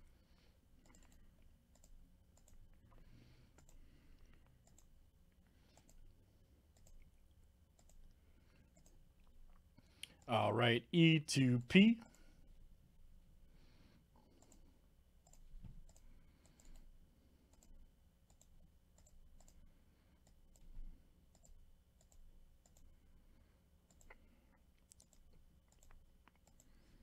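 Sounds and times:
computer mouse and keyboard clicks: 0.8 - 4.9, 5.6 - 6.1, 6.7 - 7.1, 7.7 - 9.0, 14.3 - 16.9, 17.5 - 23.0, 23.8 - 27.0.

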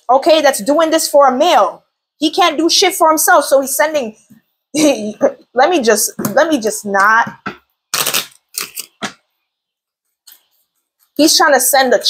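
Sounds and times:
cards being shuffled: 7.9 - 9.2.

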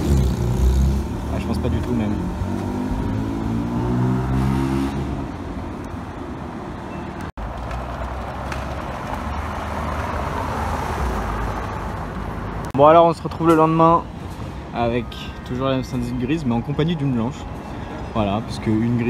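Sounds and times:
street traffic noise: 0.0 - 19.0.

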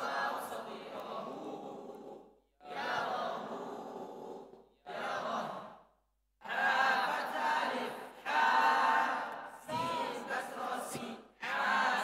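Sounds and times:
group of voices chanting in unison: 0.0 - 12.0.

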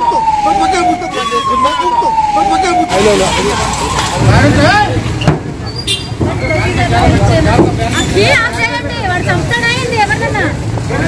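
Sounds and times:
vehicle engines idling: 0.0 - 11.0
voices talking: 0.0 - 11.0.

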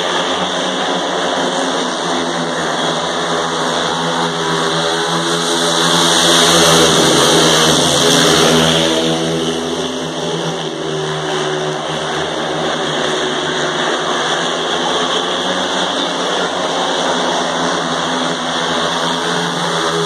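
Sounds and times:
motorcycle engines racing: 0.0 - 20.0.

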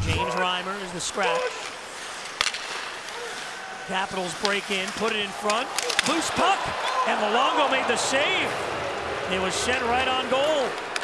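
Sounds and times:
stick hitting puck: 2.4 - 2.9, 4.3 - 6.9.

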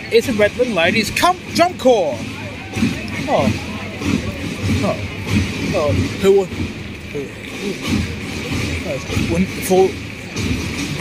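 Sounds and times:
crowd voices: 0.0 - 11.0
marching drums beating: 0.0 - 11.0.

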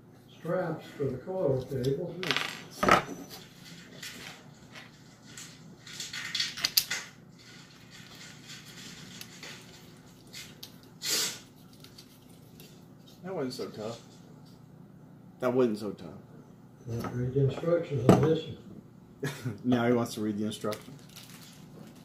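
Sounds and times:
plastic parts rattling: 3.6 - 10.6, 20.6 - 22.0.

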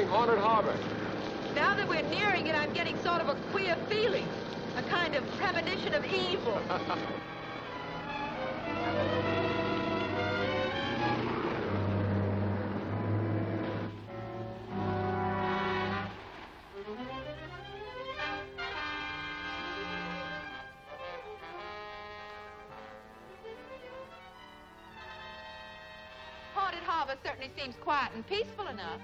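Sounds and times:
orchestral music with brass and strings: 0.0 - 29.0.

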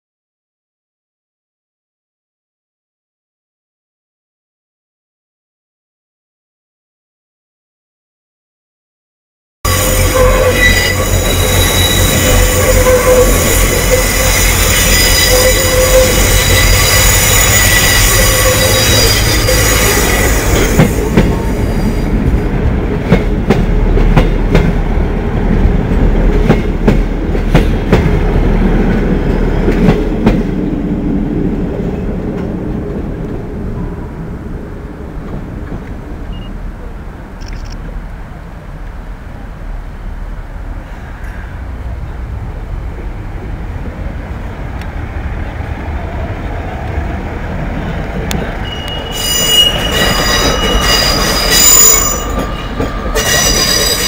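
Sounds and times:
train wheels squealing: 9.7 - 22.1, 48.4 - 54.0
train wheels clicking over rail joints: 9.7 - 24.9, 25.5 - 30.7, 47.9 - 54.0.

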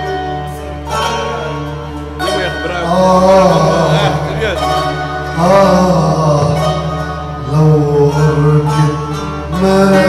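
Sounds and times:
band accompaniment: 0.0 - 10.0
person singing long wavering note: 2.8 - 10.0.

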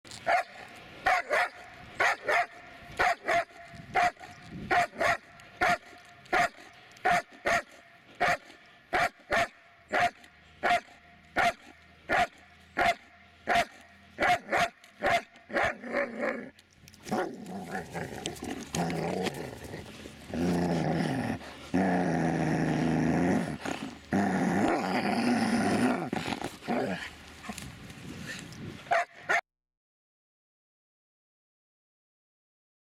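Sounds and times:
dog barking: 0.3 - 0.5, 1.1 - 15.8, 28.9 - 29.4.

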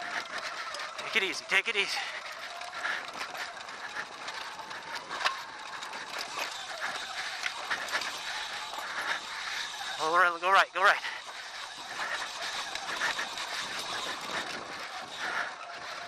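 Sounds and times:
bike chain rattling and clicking: 0.0 - 16.0
tyres crunching over gravel: 0.0 - 16.0.

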